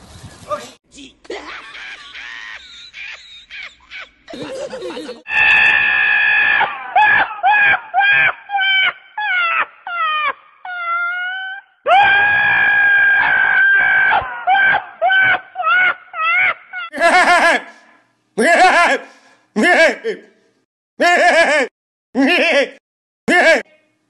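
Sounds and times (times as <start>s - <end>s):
donkey screaming: 5.2s - 17.7s.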